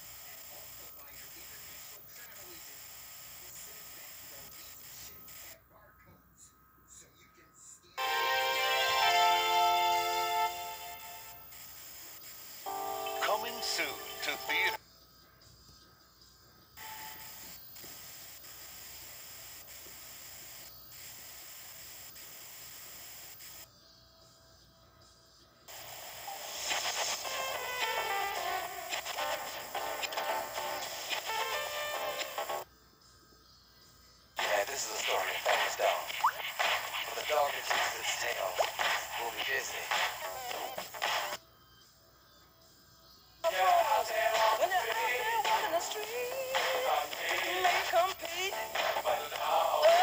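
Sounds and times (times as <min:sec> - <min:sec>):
music from a videotape: 0:00.0 - 0:22.4, 0:23.6 - 0:50.0.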